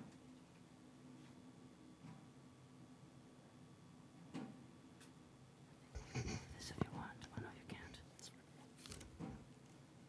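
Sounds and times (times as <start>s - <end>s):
whispered speech: 6.0s - 8.8s.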